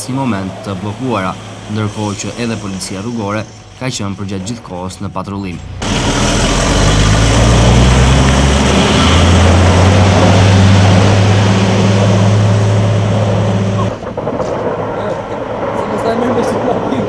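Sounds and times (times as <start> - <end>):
truck engine running: 0.0 - 14.9
road and spreader noise: 0.0 - 17.0.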